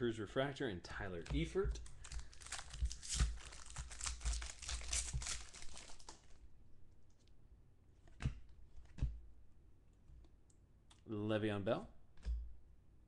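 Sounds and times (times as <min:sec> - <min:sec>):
trading cards rustling and clicking: 0:01.1 - 0:06.3.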